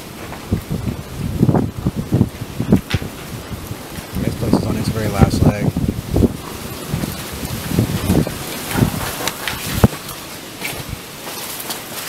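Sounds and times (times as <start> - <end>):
microphone handling noise: 0.0 - 11.4
wind noise: 0.0 - 12.0
footsteps crunching on debris: 6.2 - 12.0.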